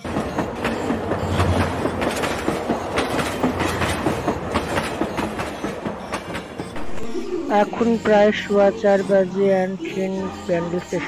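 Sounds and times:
train wheels clattering: 0.0 - 7.1
train rumble: 0.0 - 11.0.

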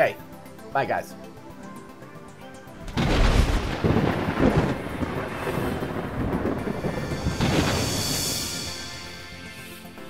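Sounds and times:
music: 0.0 - 10.0
rain-like hiss: 0.0 - 10.0
thunder crash and rumble: 2.8 - 9.3.

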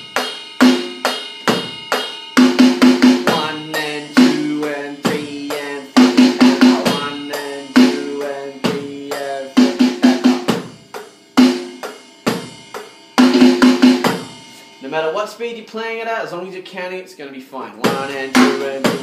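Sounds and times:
quick drum fill: 0.0 - 15.2, 17.8 - 19.0
electronic drum kit beat: 0.0 - 16.0, 17.7 - 19.0.

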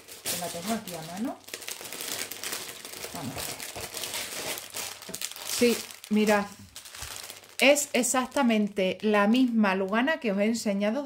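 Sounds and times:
plastic bag crinkling: 0.0 - 9.6.

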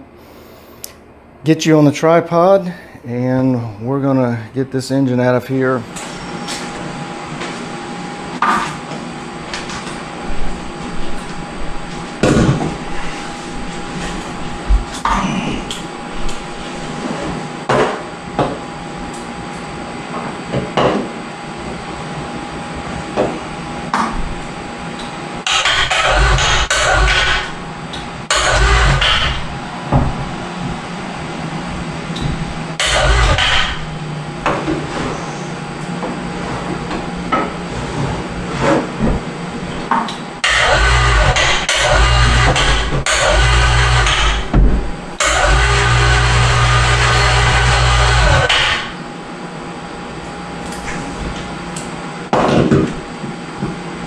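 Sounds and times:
electric hoist motor running: 23.8 - 34.7, 39.6 - 49.2.

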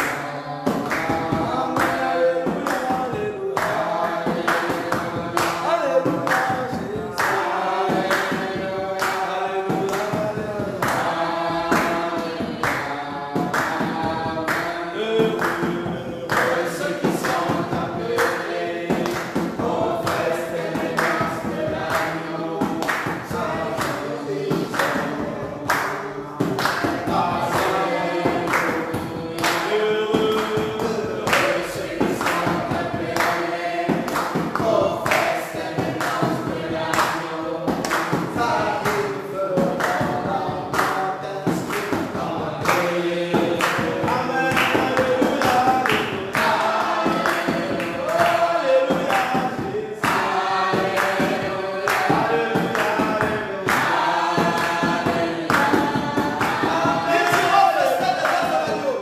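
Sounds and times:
group singing gospel song: 0.0 - 59.0
steady beat of sharp strikes: 0.0 - 59.0.

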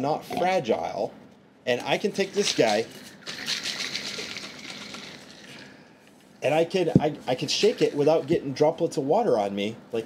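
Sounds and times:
ice and water rattling in bottle: 2.2 - 5.7.

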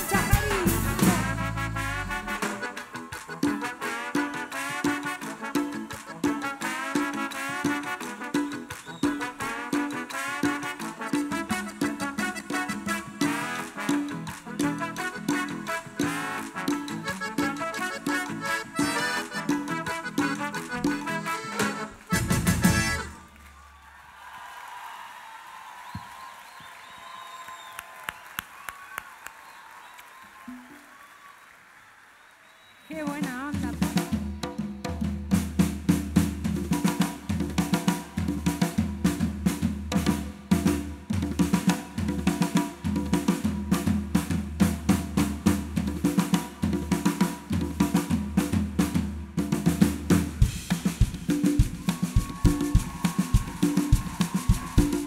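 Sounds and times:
drum kit and bass beat: 0.0 - 2.7, 50.2 - 55.0
live band music: 0.0 - 23.4, 32.9 - 55.0.

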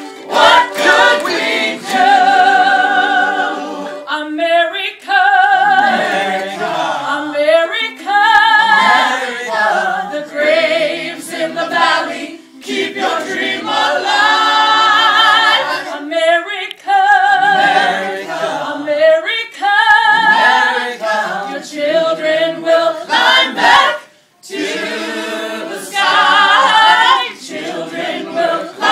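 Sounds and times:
choir singing a cappella: 0.0 - 28.9.

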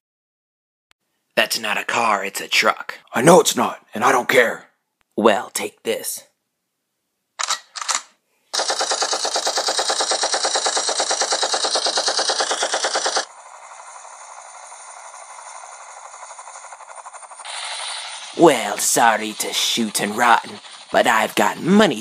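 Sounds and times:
helicopter rotor flutter: 8.5 - 22.0
machine-gun fire: 8.5 - 22.0.

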